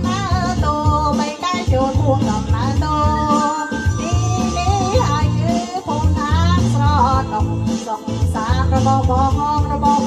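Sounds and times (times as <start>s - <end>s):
repeating bass beat: 0.0s - 7.8s
person singing wavering melody: 1.8s - 6.6s.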